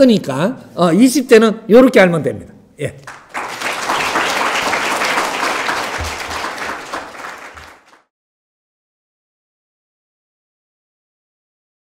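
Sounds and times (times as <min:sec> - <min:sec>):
audience applauding: 0:03.1 - 0:08.1.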